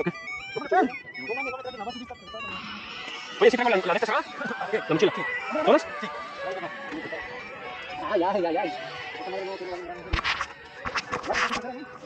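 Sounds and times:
people talking indistinctly: 0.0s - 12.0s.

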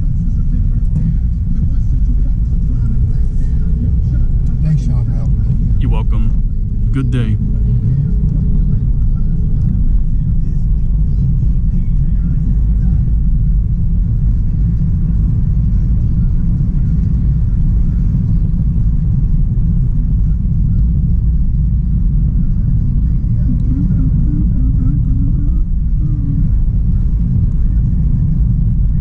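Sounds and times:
car interior road rumble: 0.0s - 29.0s.

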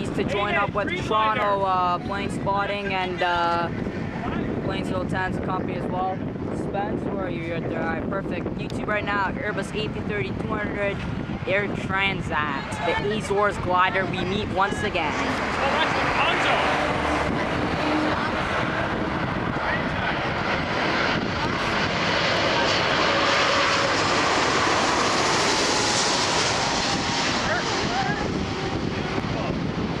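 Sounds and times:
jet airliner rumble and whine: 0.0s - 30.0s.

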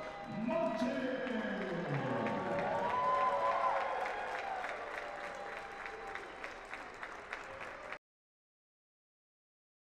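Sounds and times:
group applause: 0.1s - 8.0s.

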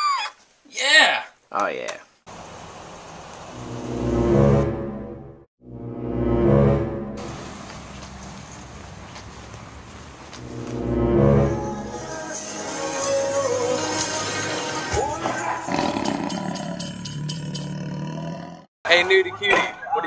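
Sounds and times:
deep horn blasts: 3.5s - 7.6s, 10.4s - 12.2s.

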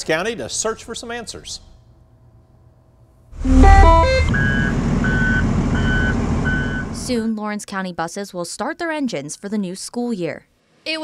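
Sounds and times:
high repeating beep: 3.4s - 6.9s
stepped electronic tones: 3.4s - 7.0s
bus engine starting and running: 3.4s - 7.2s.

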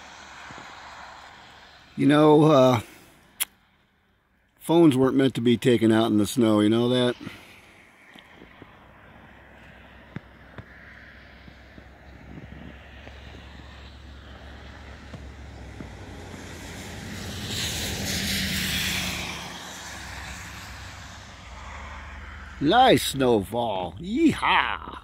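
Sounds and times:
vehicle passing on wet street: 0.0s - 3.4s, 7.2s - 24.0s.

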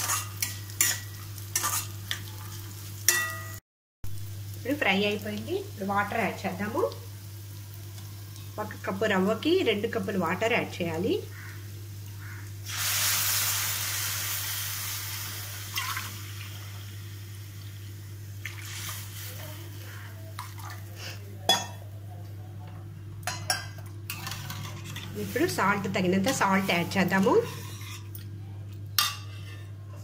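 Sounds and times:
water hissing in hot oil: 11.4s - 20.0s.

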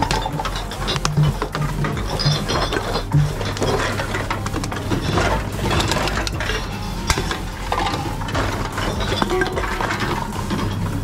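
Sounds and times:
containers clattering: 0.0s - 11.0s.

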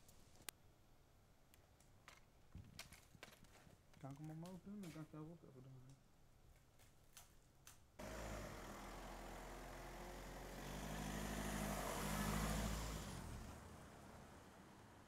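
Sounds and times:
car passing: 8.0s - 15.0s.

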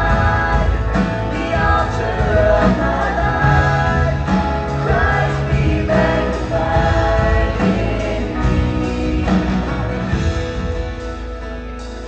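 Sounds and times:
woman and man singing: 0.0s - 10.1s
acoustic guitar: 0.0s - 12.0s
drum kit: 0.0s - 12.0s.

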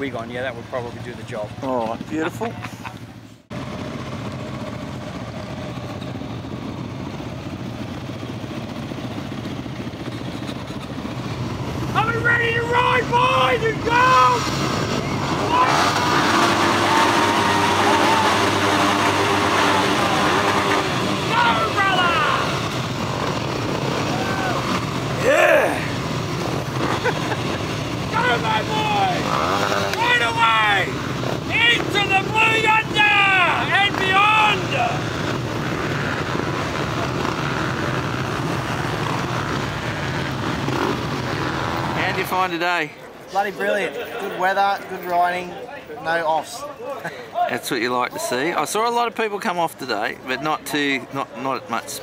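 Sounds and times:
dirt bike engines revving: 0.0s - 52.0s.

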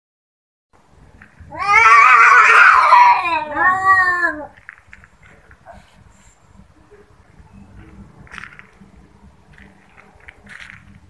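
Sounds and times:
cat yowling: 1.5s - 4.6s.

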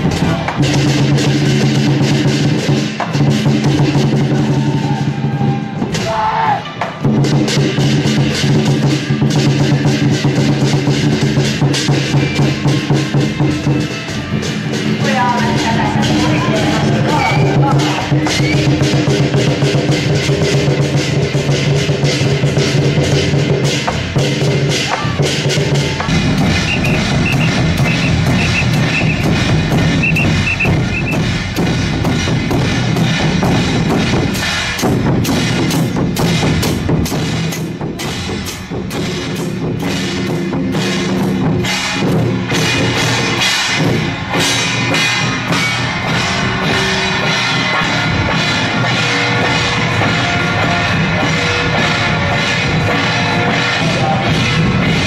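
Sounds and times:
drums beaten fast: 0.0s - 55.0s
hand cymbals clashing: 7.2s - 55.0s.

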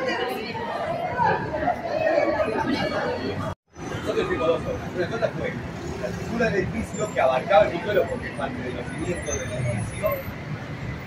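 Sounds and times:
indistinct chatter of voices: 0.0s - 11.0s.

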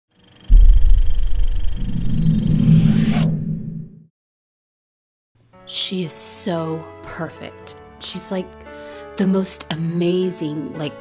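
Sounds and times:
deep rumbling hit: 0.5s - 3.6s.

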